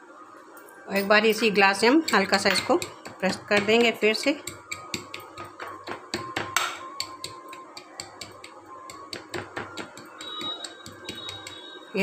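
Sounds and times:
steel tumbler tapping: 0:01.3 - 0:11.8.

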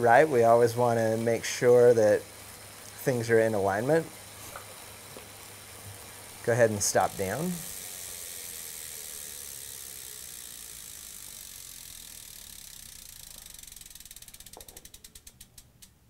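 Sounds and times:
bicycle freewheel ticking: 0:00.0 - 0:16.0.

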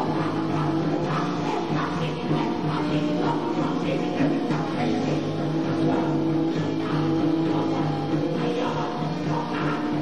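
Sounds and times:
punk rock band playing live: 0:00.0 - 0:10.0.

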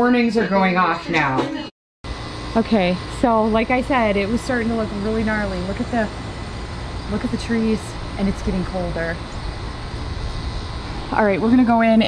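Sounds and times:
low outdoor rumble: 0:02.1 - 0:12.0.

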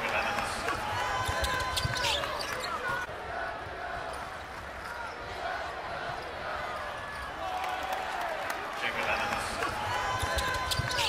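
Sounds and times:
arena crowd hum: 0:00.0 - 0:11.0
sneakers squeaking: 0:00.5 - 0:03.1, 0:09.6 - 0:11.0.

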